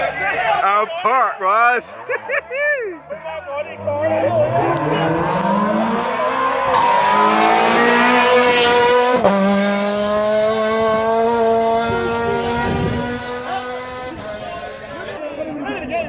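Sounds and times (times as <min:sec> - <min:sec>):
rally car engine revving: 0:03.6 - 0:15.2.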